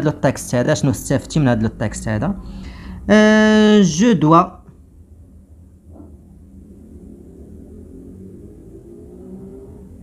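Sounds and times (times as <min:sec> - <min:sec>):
motor rumbling with hum: 0:04.7 - 0:10.0.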